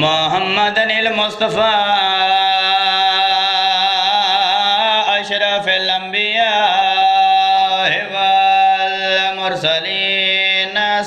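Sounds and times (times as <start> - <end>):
man chanting through loudspeakers: 0.0 - 11.0.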